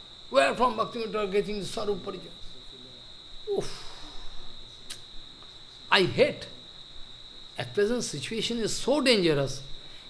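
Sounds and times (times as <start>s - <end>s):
man speaking: 0.3s - 3.8s, 5.9s - 6.7s.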